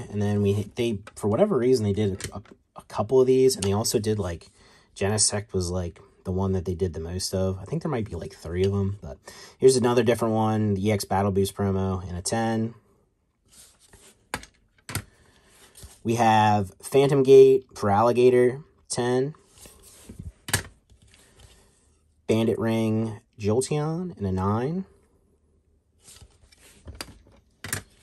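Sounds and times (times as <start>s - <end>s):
plastic cases rustling and sliding: 13.5s - 16.0s, 19.4s - 22.0s, 26.0s - 28.0s.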